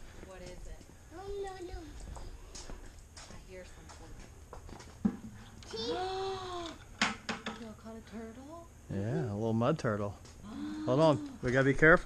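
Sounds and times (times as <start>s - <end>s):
child's drawn-out vocal sound: 5.6s - 6.8s.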